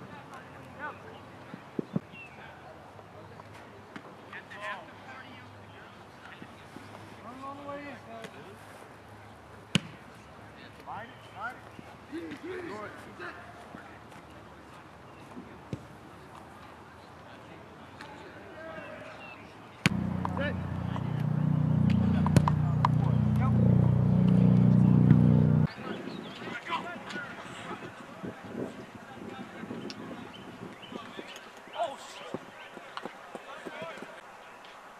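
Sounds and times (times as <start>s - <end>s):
footballs knocking: 19.9s - 23.5s
wind buffeting microphone: 25.6s - 31.3s.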